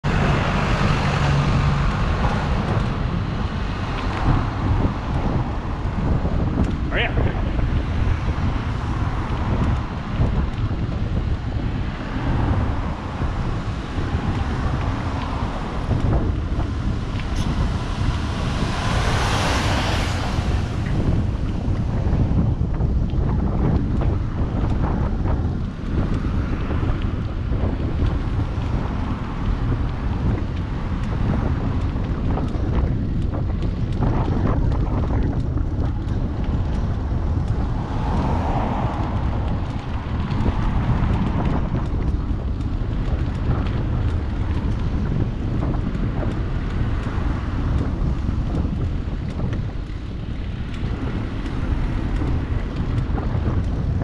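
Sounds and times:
low rumble of road and traffic: 0.0s - 54.0s
wind buffeting microphone: 0.0s - 54.0s.

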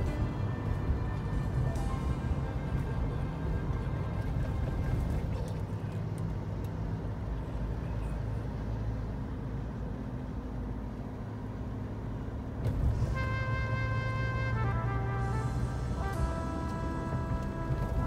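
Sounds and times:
car road and engine noise: 0.0s - 18.0s.

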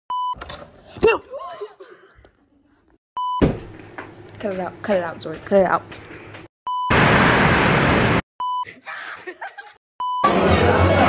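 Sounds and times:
test-pattern beep: 6.7s - 7.0s, 8.4s - 8.7s, 10.0s - 10.3s.

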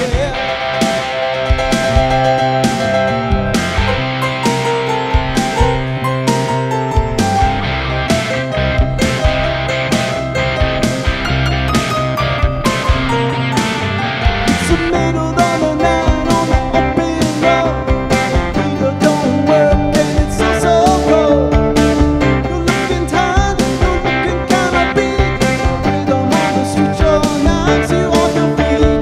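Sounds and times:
bass guitar: 0.0s - 29.0s
electric guitar: 0.0s - 29.0s
keyboard: 0.0s - 29.0s
steady drum beat: 0.0s - 29.0s.

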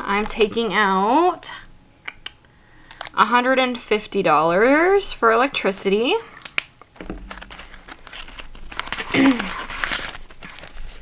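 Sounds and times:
plastic binder pocket crinkling: 6.3s - 11.0s
paper banknotes rustling: 7.0s - 11.0s.

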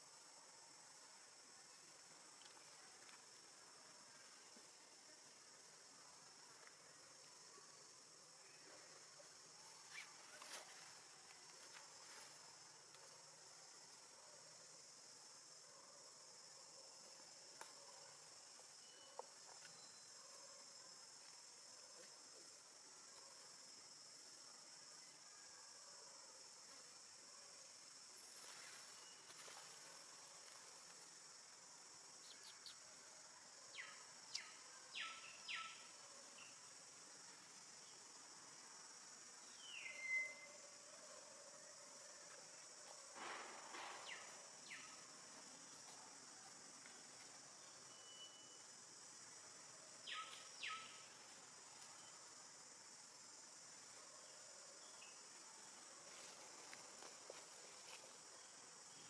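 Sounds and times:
insects droning: 0.0s - 59.0s
short insect chirps and clicks: 32.2s - 32.8s, 33.7s - 36.5s, 43.2s - 45.1s.

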